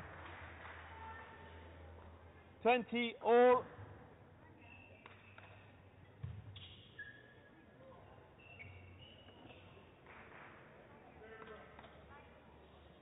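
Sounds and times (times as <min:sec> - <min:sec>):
shoe squeaks on court mat: 0:06.5 - 0:07.5, 0:08.4 - 0:09.8.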